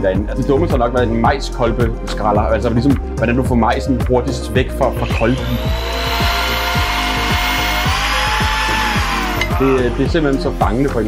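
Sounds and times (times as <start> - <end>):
music beat with kick drum: 0.1 - 11.0
power drill motor whine: 4.8 - 10.2
blade shaving corn kernels: 4.9 - 10.2.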